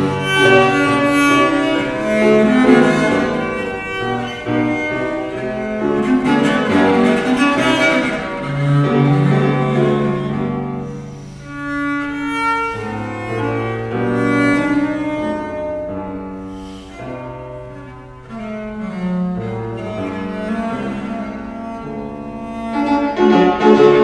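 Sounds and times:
fortepiano: 0.0 - 24.0
viola da gamba bowed melody: 0.0 - 24.0.

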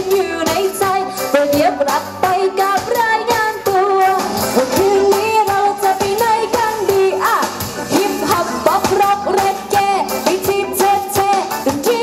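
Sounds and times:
backing music with steady beat: 0.0 - 12.0
woman singing into a microphone: 0.0 - 12.0.

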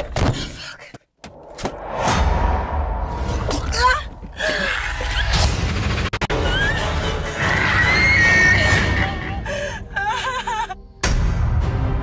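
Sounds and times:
low rumbling music: 5.0 - 12.0
woman screaming: 6.4 - 10.7.

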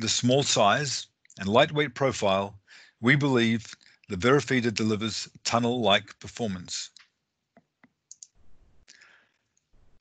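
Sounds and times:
faint clicks: 6.9 - 9.7.

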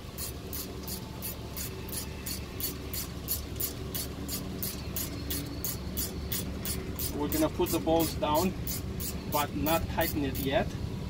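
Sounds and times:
ratchet wrench clicking: 0.1 - 10.6.

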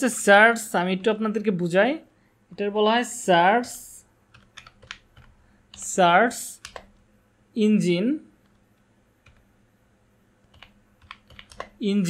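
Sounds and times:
computer keyboard typing: 4.3 - 7.1, 8.4 - 9.5, 10.4 - 11.8.

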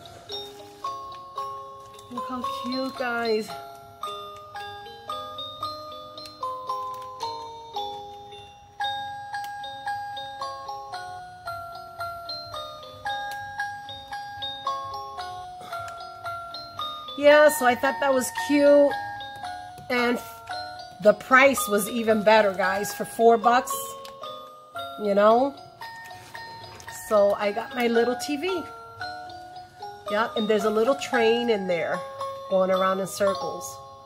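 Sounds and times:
bell-like melody from decoration: 0.0 - 34.0.

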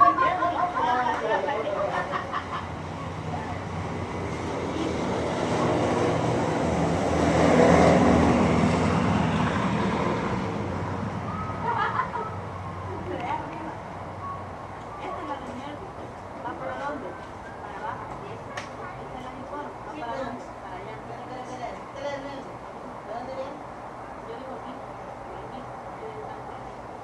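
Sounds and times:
motor vehicle passing: 0.0 - 27.0.

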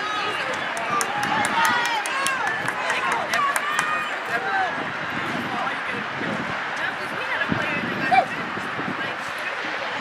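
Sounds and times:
distant crowd voices: 0.0 - 10.0.

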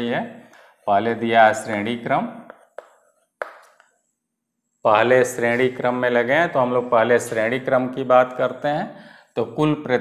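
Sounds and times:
chalk tapping on blackboard: 2.5 - 3.9.

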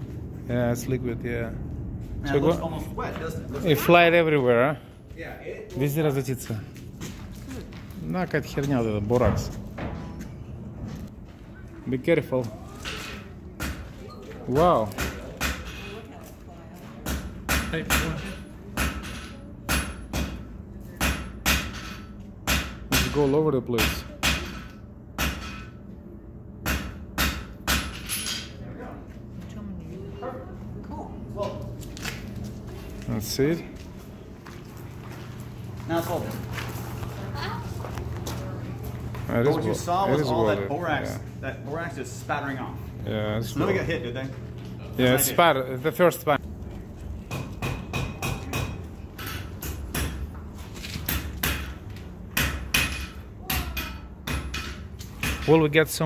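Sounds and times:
hammer striking iron on anvil: 17.0 - 18.2, 18.8 - 25.8, 26.6 - 28.5, 47.3 - 50.2, 51.1 - 55.6.

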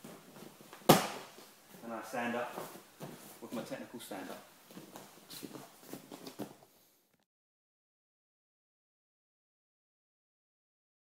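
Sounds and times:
slap on training mat: 0.9 - 1.3.

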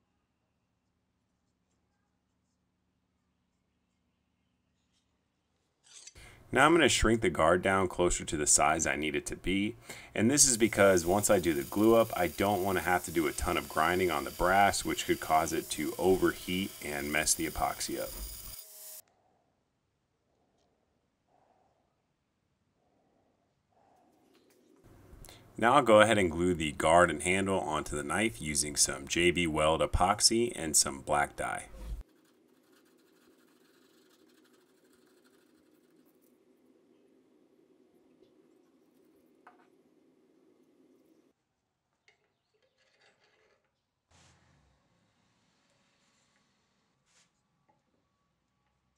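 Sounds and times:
belt grinder grinding brass: 10.4 - 19.0.

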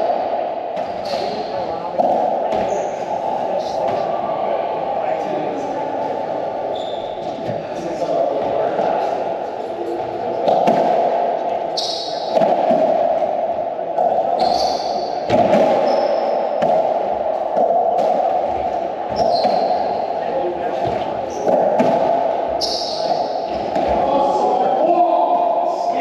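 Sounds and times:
ball hitting racquets and walls: 0.0 - 2.9, 10.4 - 24.1
sneakers squeaking on wooden floor: 6.7 - 7.7, 11.7 - 12.4, 14.3 - 16.6, 19.1 - 20.2, 22.5 - 23.9.

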